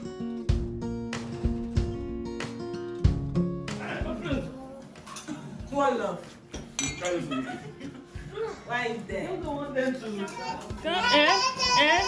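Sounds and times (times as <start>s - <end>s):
sharp clink of dishes: 6.5s - 7.2s.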